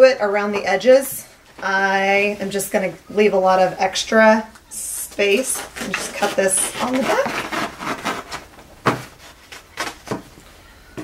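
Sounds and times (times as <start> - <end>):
scissors cutting fabric: 5.4 - 8.4.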